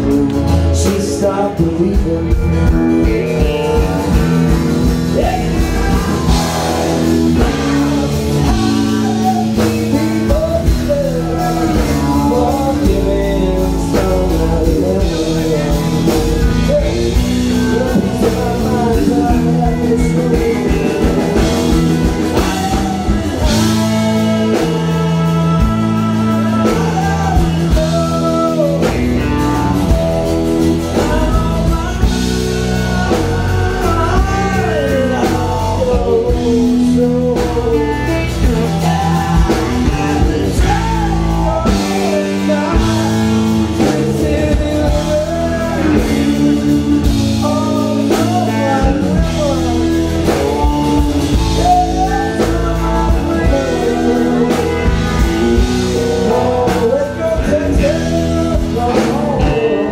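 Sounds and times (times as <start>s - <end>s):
drum kit: 0.0s - 59.9s
electric guitar: 0.0s - 59.9s
man singing into microphone: 0.0s - 59.9s.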